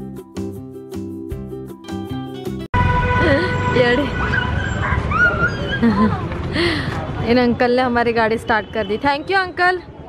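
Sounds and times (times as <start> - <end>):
high-pitched yelps: 4.2 - 6.0.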